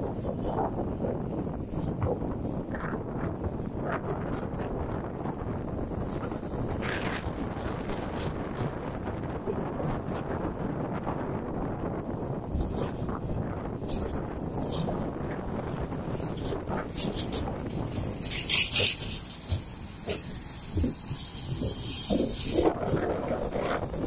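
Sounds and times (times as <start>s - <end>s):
lorries and cars passing: 0.0s - 24.0s
wind on microphone: 0.0s - 24.0s.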